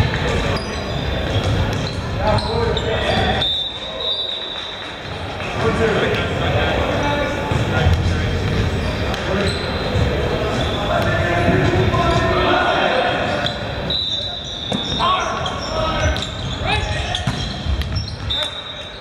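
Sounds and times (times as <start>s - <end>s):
shoes squeaking on hardwood floor: 0.0s - 6.2s, 7.3s - 12.4s, 13.4s - 19.0s
voices in echoing gym: 0.0s - 19.0s.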